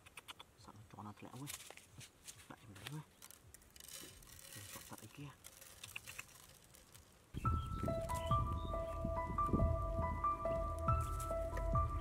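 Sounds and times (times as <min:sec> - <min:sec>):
hands working soil: 0:01.2 - 0:08.4, 0:10.5 - 0:12.0
background music with held notes: 0:07.4 - 0:12.0.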